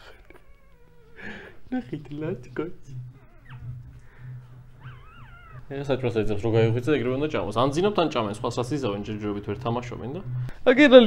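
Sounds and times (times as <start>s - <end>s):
puppy crying in squeaks: 0.4s - 1.2s, 3.2s - 3.8s, 4.8s - 5.7s.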